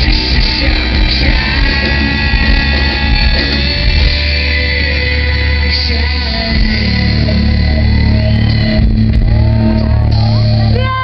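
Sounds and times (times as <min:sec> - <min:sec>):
electric guitars: 0:00.0 - 0:11.0
live rock band playing: 0:00.0 - 0:11.0
sustained low bass: 0:00.0 - 0:11.0.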